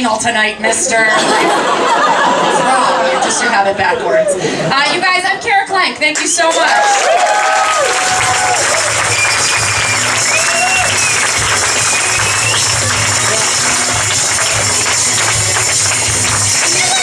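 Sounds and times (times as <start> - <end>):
audience applauding: 6.4 - 17.0
music with pulsing bass beat: 9.0 - 17.0.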